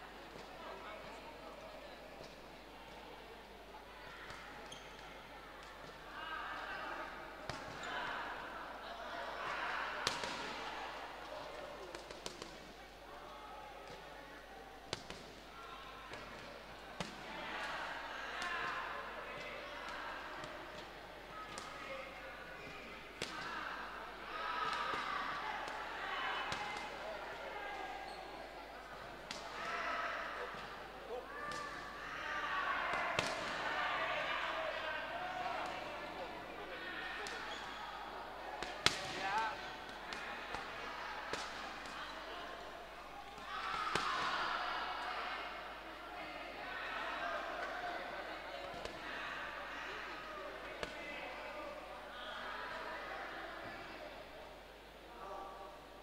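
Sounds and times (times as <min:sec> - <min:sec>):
voices in a hall: 0:00.0 - 0:56.0.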